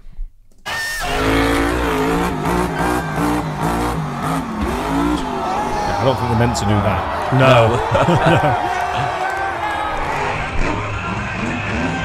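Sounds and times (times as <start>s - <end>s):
monster truck engine revving: 0.7s - 12.0s.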